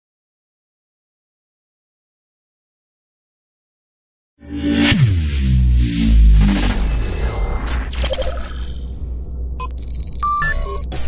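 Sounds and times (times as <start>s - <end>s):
deep bass pulse: 4.4s - 10.4s
digital beeps and blips: 6.0s - 8.8s, 9.6s - 11.0s.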